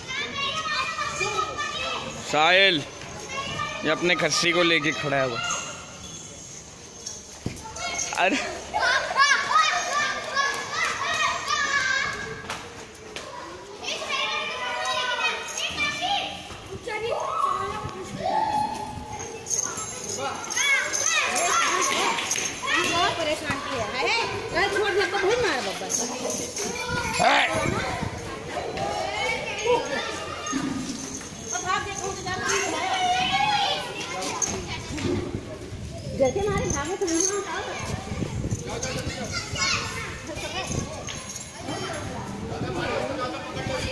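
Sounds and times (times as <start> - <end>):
children calling and chattering: 0.0 - 43.9.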